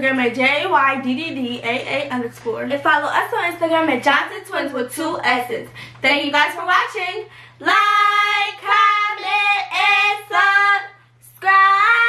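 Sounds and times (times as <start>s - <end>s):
girls singing: 7.6s - 12.0s.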